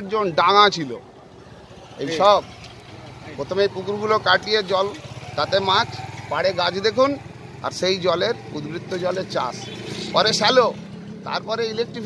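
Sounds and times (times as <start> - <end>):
man speaking: 3.2 - 12.0.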